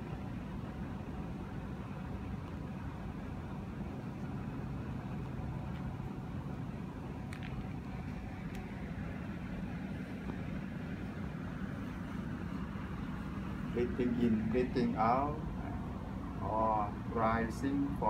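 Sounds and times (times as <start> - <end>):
low rumbling hum: 0.0 - 18.0.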